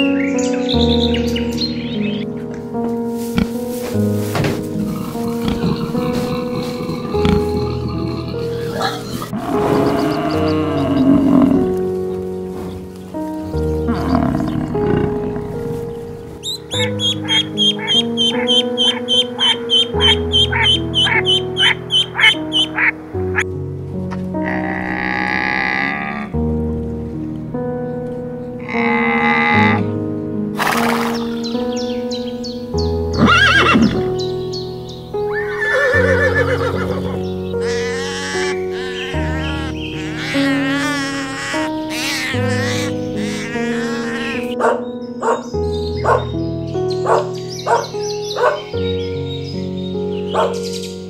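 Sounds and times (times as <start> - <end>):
background music: 0.0 - 51.0
ducks calling: 4.6 - 23.4, 24.1 - 26.4, 28.6 - 29.9, 30.6 - 49.2, 50.1 - 50.8.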